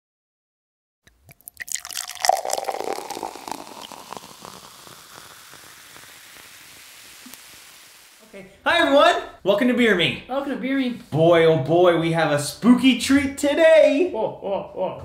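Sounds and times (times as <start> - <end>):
beer pouring into a glass: 1.1 - 8.2
beer fizzing: 1.1 - 8.3.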